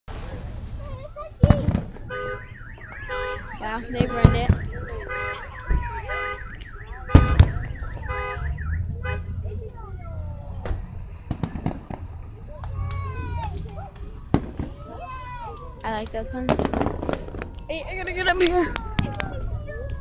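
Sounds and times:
fireworks bangs: 0.1s - 19.6s
car alarm warbling: 1.9s - 10.3s, 15.8s - 20.0s.

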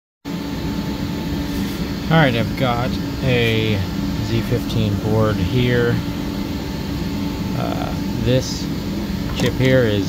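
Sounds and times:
machine hum with low tones: 0.3s - 10.0s.

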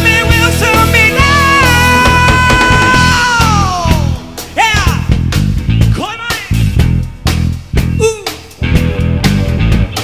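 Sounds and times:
band music with bass guitar: 0.0s - 10.0s.

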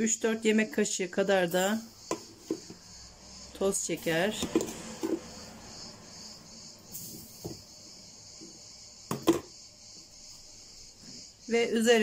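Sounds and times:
container knocking on counter: 9.1s - 9.5s.

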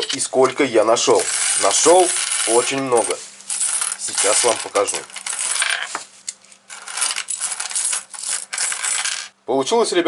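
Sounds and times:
coins clinking and jingling: 1.1s - 6.0s, 6.7s - 9.3s.

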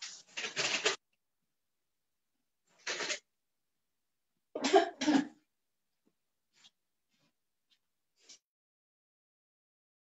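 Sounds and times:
person coughing: 4.6s - 5.4s.

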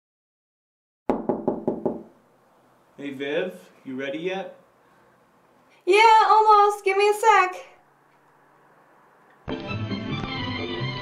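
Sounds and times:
knocking on a door: 1.1s - 2.2s.

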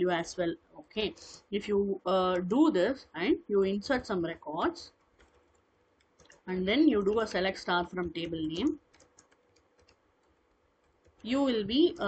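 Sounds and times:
computer keyboard keystrokes: 5.1s - 6.4s, 8.0s - 11.3s.

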